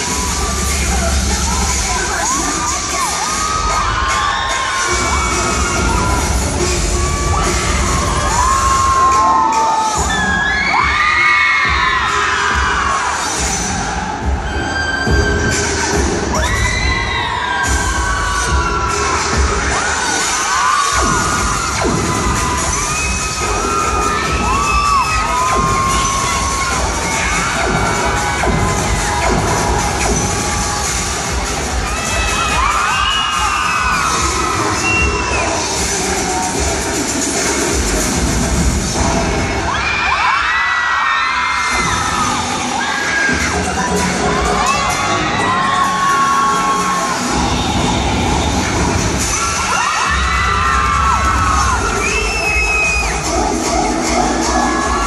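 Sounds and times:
crowd cheering and screaming: 0:00.0 - 0:55.0
dance music: 0:00.0 - 0:55.0.

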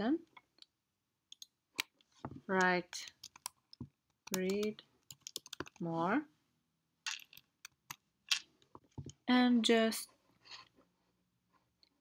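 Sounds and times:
computer mouse clicks: 0:02.6 - 0:05.8.

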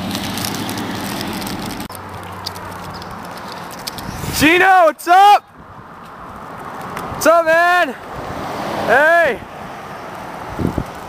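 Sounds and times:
camera handling crackling: 0:00.1 - 0:04.2.

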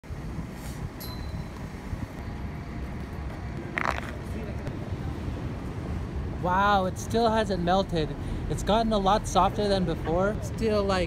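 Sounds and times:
low urban rumble: 0:00.0 - 0:11.0.

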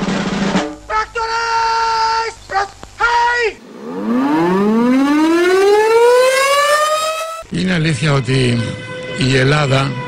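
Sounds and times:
air-raid siren winding up: 0:03.6 - 0:07.5
held pitched notes: 0:03.6 - 0:07.5.

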